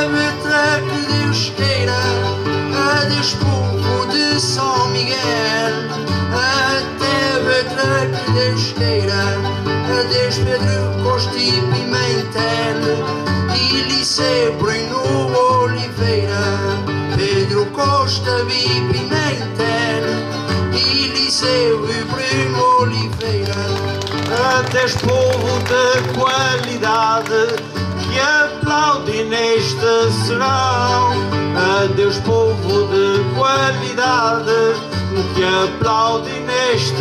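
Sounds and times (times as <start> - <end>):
guitars playing folk tune: 0.0 - 37.0
person singing: 0.0 - 37.0.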